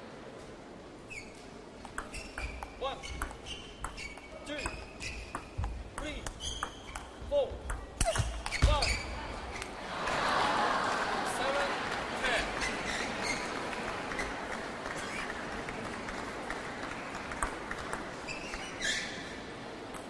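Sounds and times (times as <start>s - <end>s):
shoes squeaking on floor: 1.1s - 7.4s, 8.0s - 9.7s, 12.6s - 14.4s, 15.0s - 15.3s, 18.2s - 19.3s
table tennis ball clicks: 1.8s - 8.6s.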